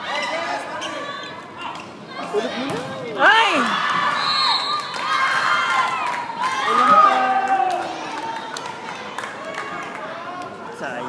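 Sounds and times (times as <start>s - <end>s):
spectators' voices: 0.0s - 11.0s.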